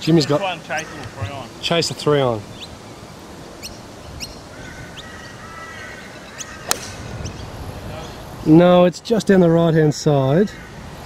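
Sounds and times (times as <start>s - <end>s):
high bird chirps: 2.5s - 7.6s
golf club striking ball: 6.6s - 7.4s.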